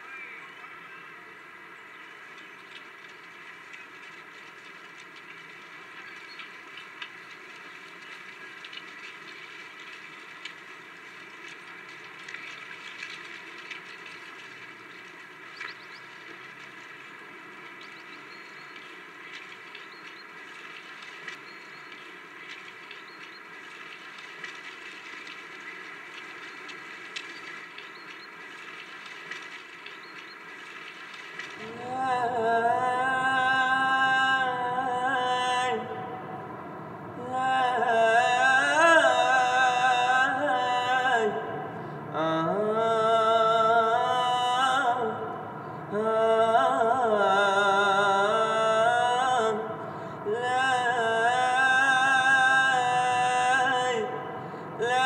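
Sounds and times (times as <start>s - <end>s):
faint scattered clicks: 1.9s - 34.4s.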